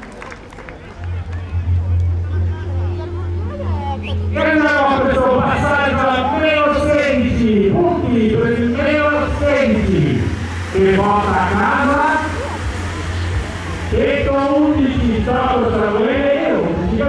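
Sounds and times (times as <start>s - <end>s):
steady low hum: 1.6s - 17.0s
man commentating: 4.3s - 12.8s, 13.7s - 17.0s.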